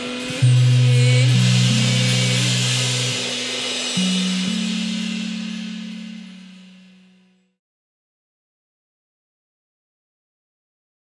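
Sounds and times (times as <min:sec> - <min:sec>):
band's held chord ringing: 0:00.0 - 0:07.4
crash cymbals: 0:00.0 - 0:07.6.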